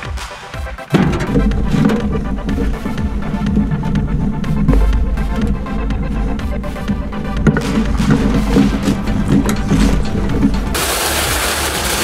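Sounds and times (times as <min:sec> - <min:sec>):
background music with a beat: 0:00.0 - 0:12.0
rocks pouring from a wheelbarrow: 0:07.4 - 0:12.0.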